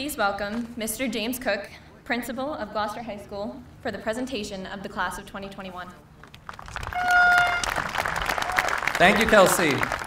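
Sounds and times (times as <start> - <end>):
crowd applause: 6.3 - 10.0
held horn note: 6.9 - 8.0.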